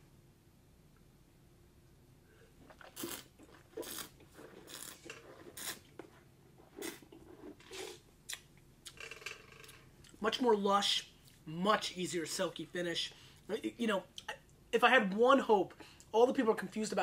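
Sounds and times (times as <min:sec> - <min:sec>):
person slurping wine: 0:02.6 - 0:05.9, 0:06.7 - 0:08.0.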